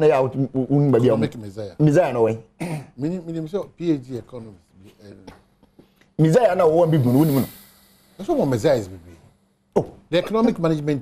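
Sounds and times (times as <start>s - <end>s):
throat clearing: 2.6s - 3.0s.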